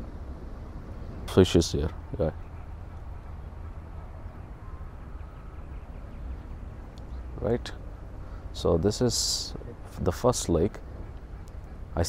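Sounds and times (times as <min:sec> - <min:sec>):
faint distant bird calls: 0:00.0 - 0:12.0
wind rumble on microphone: 0:00.0 - 0:12.0.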